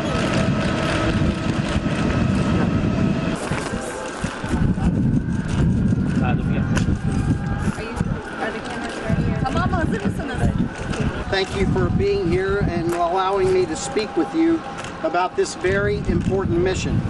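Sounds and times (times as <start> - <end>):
steady low rumble: 0.0 - 17.0
people talking indistinctly: 6.1 - 16.9.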